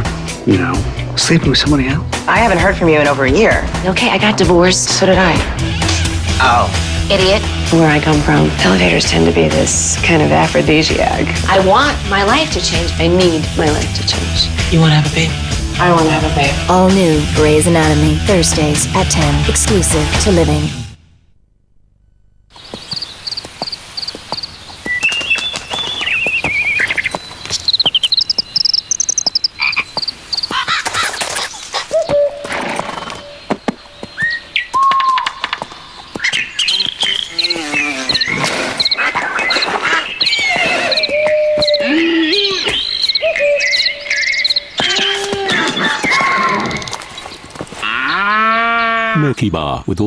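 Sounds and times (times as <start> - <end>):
high chirps: 22.5 - 32.4, 34.1 - 47.5.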